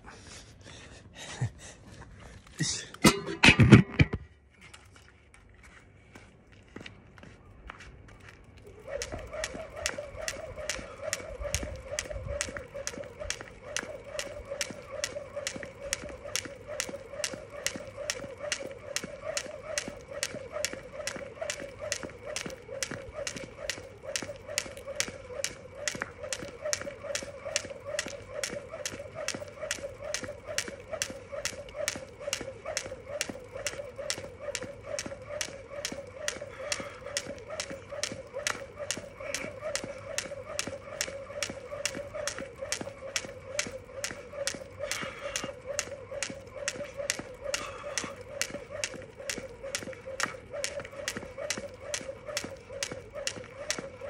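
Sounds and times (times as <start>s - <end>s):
skipping rope slapping asphalt: 8.6s - 54.0s.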